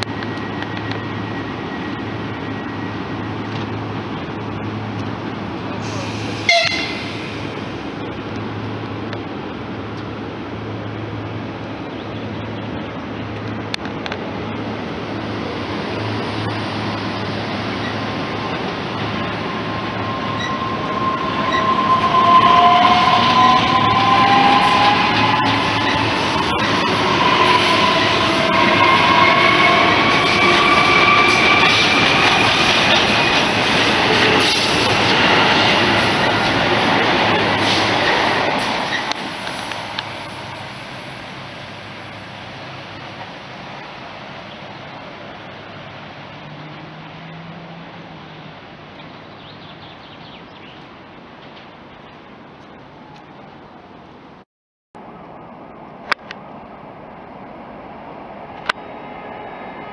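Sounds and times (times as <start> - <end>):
train wheels on rails: 0.0 - 50.1.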